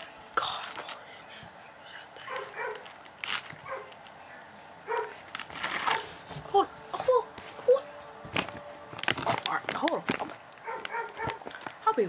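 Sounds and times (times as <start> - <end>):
dog barking: 2.2 - 2.9, 3.6 - 3.9, 4.8 - 5.2, 10.6 - 11.5.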